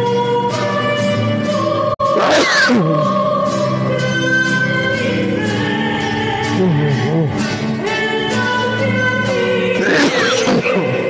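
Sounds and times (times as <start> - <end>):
church hymn singing: 0.0 - 11.0.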